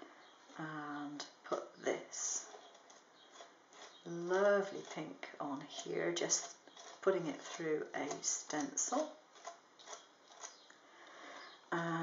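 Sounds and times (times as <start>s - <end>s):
palette knife scraping: 2.4s - 10.7s.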